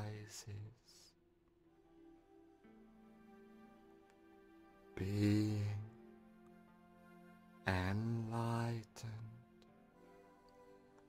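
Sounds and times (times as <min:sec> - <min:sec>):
soft meditation drone: 0:00.0 - 0:11.0.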